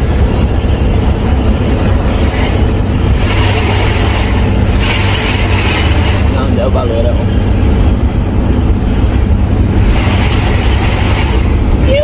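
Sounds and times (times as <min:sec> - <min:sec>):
diesel engine droning: 0:00.0 - 0:12.0.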